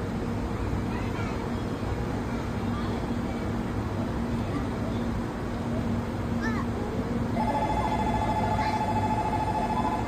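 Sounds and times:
electronic departure bell ringing: 0:07.4 - 0:10.0.

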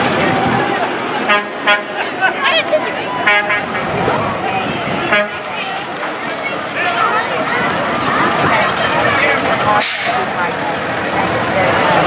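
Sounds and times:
crowd chatter: 0:00.0 - 0:12.0
passing traffic: 0:00.0 - 0:12.0
vehicle horn blasts: 0:01.3 - 0:02.0, 0:03.2 - 0:04.0, 0:05.1 - 0:05.5.

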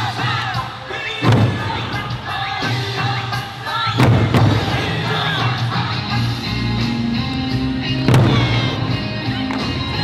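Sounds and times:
drum and folk music: 0:00.0 - 0:10.0
large barrel drum strike: 0:01.2 - 0:01.8, 0:04.0 - 0:05.0, 0:08.1 - 0:08.9.

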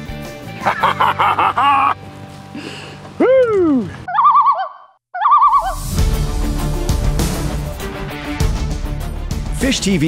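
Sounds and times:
loon calling: 0:03.2 - 0:05.8.

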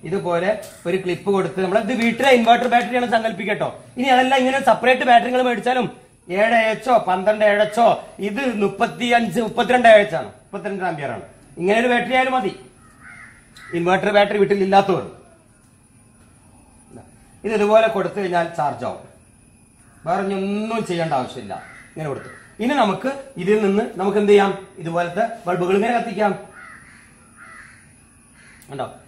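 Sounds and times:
man speaking: 0:00.0 - 0:12.7, 0:13.7 - 0:15.2, 0:16.9 - 0:19.1, 0:20.0 - 0:26.5
crows cawing: 0:12.6 - 0:14.1, 0:19.8 - 0:20.2, 0:20.9 - 0:23.0, 0:26.4 - 0:28.9.

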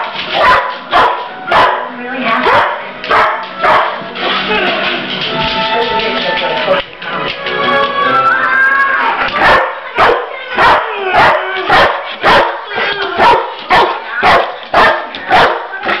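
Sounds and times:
dog barking: 0:00.3 - 0:04.0, 0:09.4 - 0:15.7.

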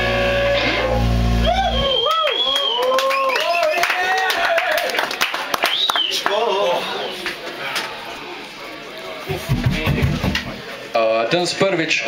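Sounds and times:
distorted guitar and bass chord: 0:00.0 - 0:02.0
guitar feedback tones: 0:00.0 - 0:02.1.

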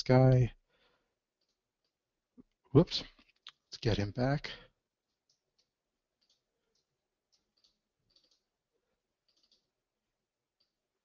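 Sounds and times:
computer mouse clicks: 0:05.1 - 0:08.6, 0:09.2 - 0:09.8.

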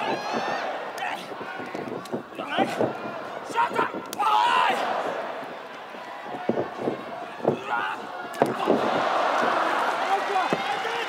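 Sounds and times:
arena crowd ambience: 0:00.0 - 0:11.0.

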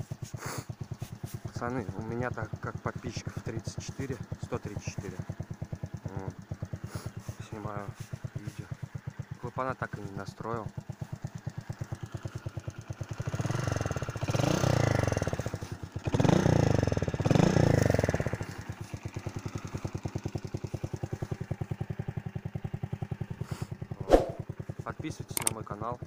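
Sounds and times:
motorcycle engine idling and revving: 0:00.0 - 0:26.0.

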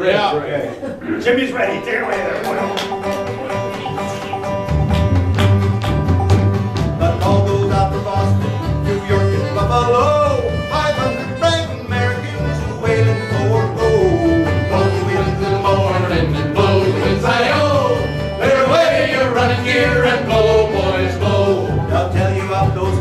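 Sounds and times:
acoustic folk band playing: 0:01.5 - 0:23.0
steady bass pulse: 0:13.7 - 0:17.2.

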